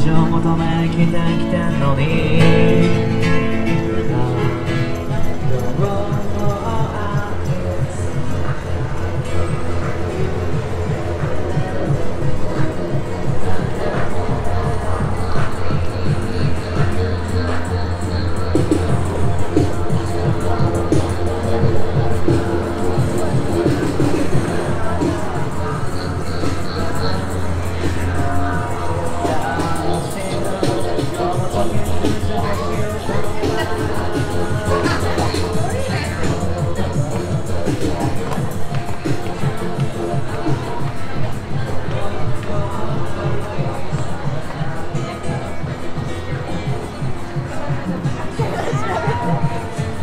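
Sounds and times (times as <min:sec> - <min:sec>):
crowd noise: 0:00.0 - 0:50.0
music with steady beat: 0:00.0 - 0:50.0
passing voices: 0:00.0 - 0:50.0.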